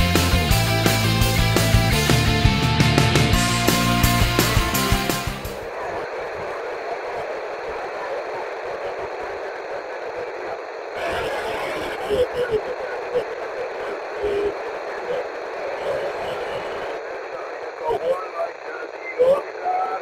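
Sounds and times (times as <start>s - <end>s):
garbled radio voices: 3.2s - 20.0s
radio static hiss: 3.6s - 20.0s.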